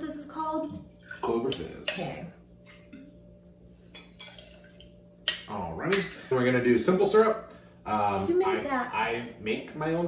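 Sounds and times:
liquid trickle into metal cup: 4.1s - 5.0s.

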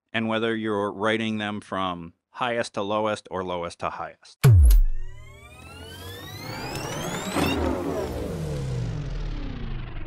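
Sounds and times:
electronic logo sting: 4.4s - 10.0s.

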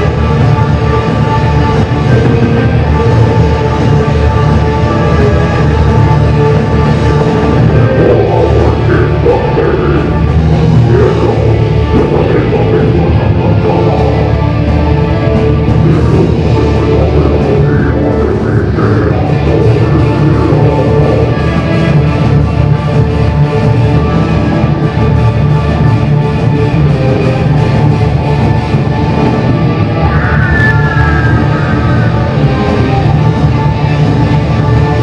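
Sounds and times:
metal band playing live: 0.0s - 35.0s.

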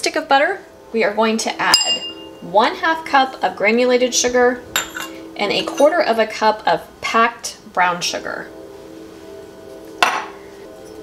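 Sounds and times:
measuring cup knocking glass bowl: 10.0s - 10.3s.

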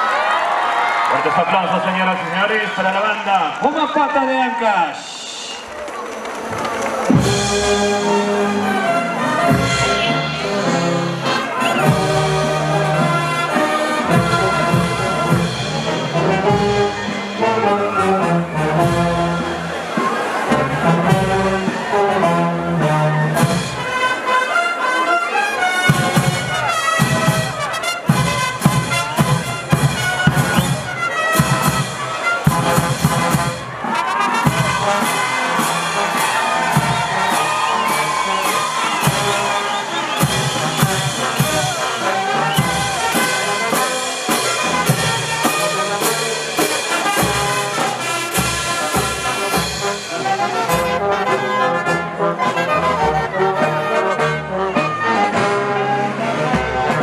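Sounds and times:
brass band playing: 0.0s - 57.0s
snare and bass drums: 6.9s - 21.9s, 22.8s - 24.1s, 25.8s - 51.2s.

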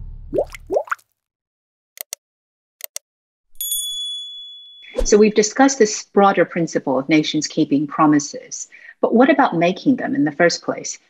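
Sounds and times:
sharp mouse clicks: 2.0s - 2.2s
ringing bell ding: 3.6s - 5.0s.

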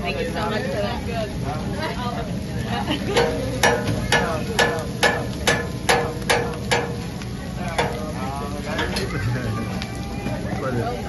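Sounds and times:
griddle sizzling: 0.0s - 11.0s
metal spatula clacking: 3.2s - 7.1s, 7.7s - 8.2s.

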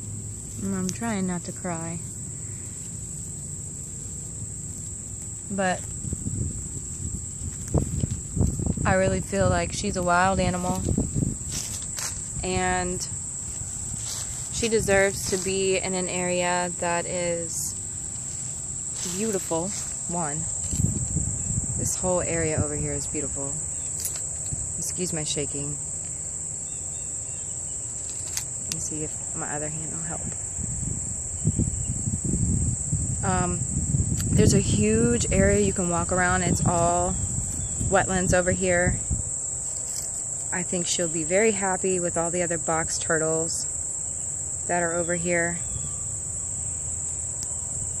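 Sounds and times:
insect chorus trilling: 0.0s - 48.0s.

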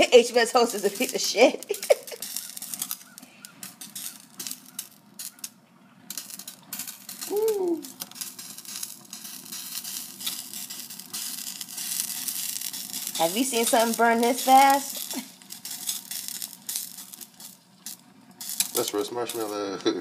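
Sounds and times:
plastic crackling in flame: 0.0s - 20.0s.

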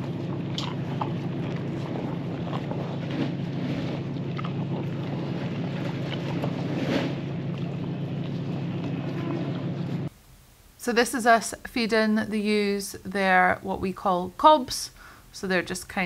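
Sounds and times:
calves feeding at trough: 0.0s - 10.1s
low mechanical drone: 0.0s - 10.1s.

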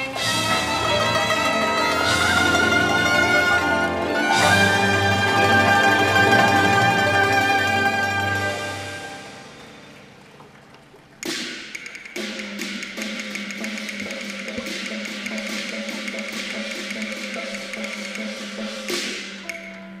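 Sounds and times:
opera ensemble music: 0.0s - 11.0s
wood-block taps: 11.2s - 19.8s.

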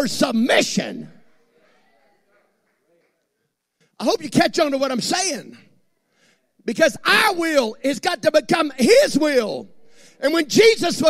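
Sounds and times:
man preaching with echo: 0.0s - 1.4s, 4.0s - 5.7s, 6.6s - 11.0s.

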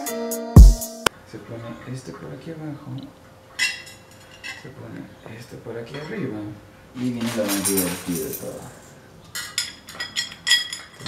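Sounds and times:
metal parts clinking: 7.2s - 8.7s.

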